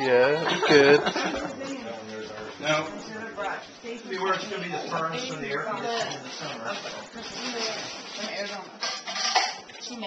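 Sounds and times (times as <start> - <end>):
low table talk: 0.0 - 10.0
cutlery and plates clinking: 8.8 - 10.0.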